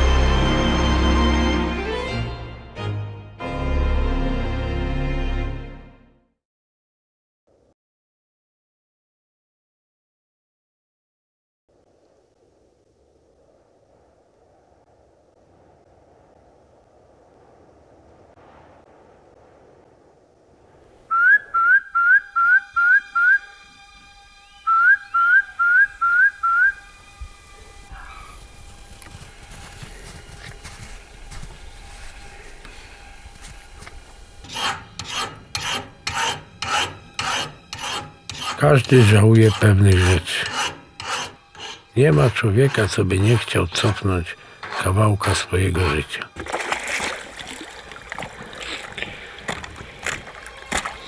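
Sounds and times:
short upward whistled notes: 21.1s - 23.6s, 24.6s - 26.9s
axe blade scraping metal: 34.4s - 45.2s.

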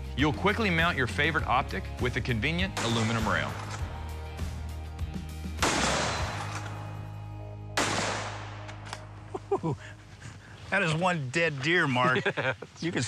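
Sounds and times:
background music: 0.0s - 12.6s
rifle shots echoing: 2.7s - 3.9s, 5.6s - 7.0s, 7.8s - 9.1s.

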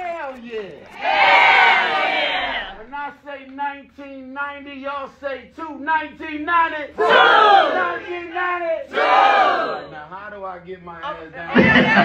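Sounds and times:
crowd shouting together: 1.0s - 2.8s, 7.0s - 8.1s, 8.9s - 9.9s
man's voice: 9.9s - 12.0s.

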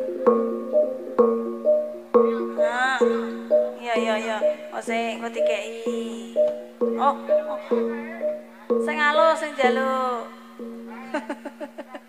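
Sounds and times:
gamelan metallophone melody: 0.0s - 11.6s
sharp drum strokes: 1.2s - 11.0s.

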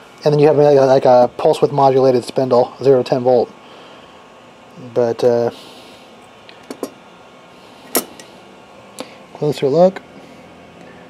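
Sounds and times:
circuit board clacking on workbench: 6.7s - 7.0s.

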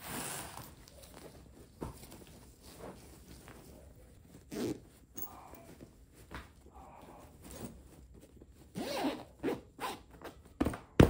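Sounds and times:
fabric rustling: 0.0s - 10.6s
zipper being worked by hand: 4.3s - 5.3s, 8.7s - 10.4s.

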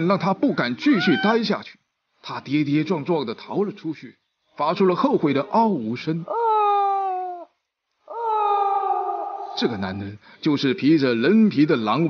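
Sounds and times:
wolf-like howls: 8.1s - 9.8s.

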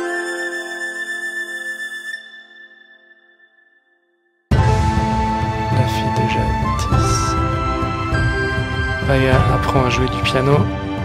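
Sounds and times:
held flute-like chord: 0.0s - 3.7s, 4.5s - 10.7s.

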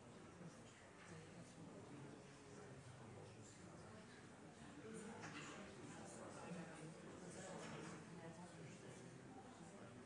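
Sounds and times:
murmur of people talking: 0.0s - 10.0s.

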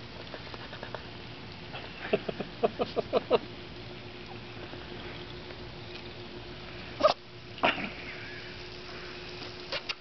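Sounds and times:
faint steady hum: 0.0s - 10.0s
puppy yelping: 7.0s - 7.2s.

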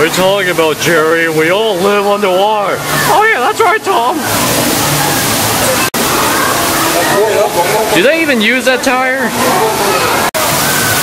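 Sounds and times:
rushing splashing water: 0.0s - 11.0s.

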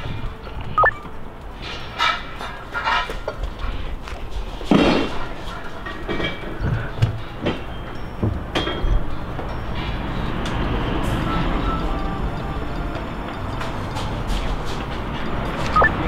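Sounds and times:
steady background noise: 0.0s - 16.0s
steel scaffolding clanking: 1.5s - 10.0s.

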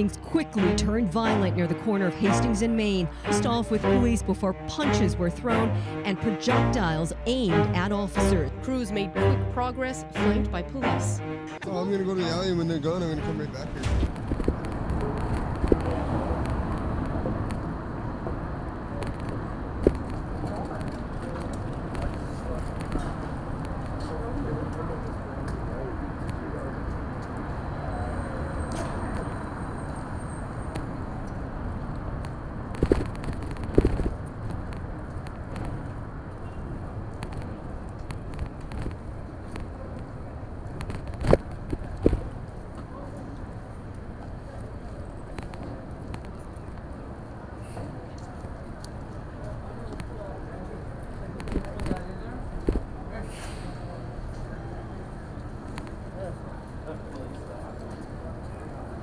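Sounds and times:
indistinct voices: 0.0s - 17.5s
traffic hum: 0.0s - 59.0s.

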